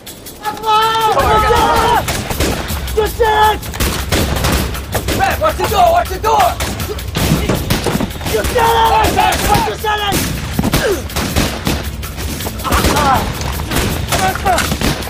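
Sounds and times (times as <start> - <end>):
voices shouting: 0.0 - 15.0
rapid rifle fire: 1.2 - 15.0.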